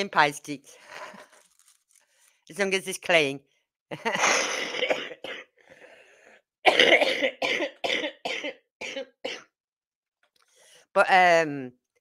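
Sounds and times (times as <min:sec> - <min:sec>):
person laughing: 0:03.9 - 0:04.7.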